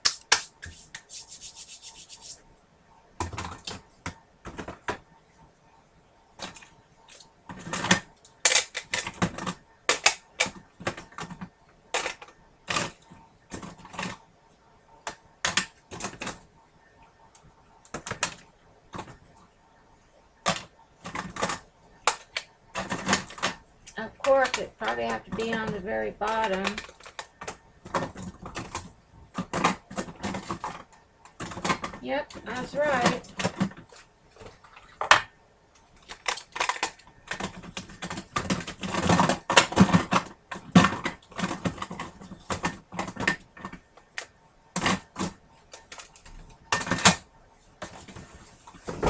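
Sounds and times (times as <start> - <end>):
plastic items rummaged and clattering: 3.1 - 5.1, 6.4 - 14.3, 15.0 - 16.5, 17.8 - 19.4, 20.4 - 49.0.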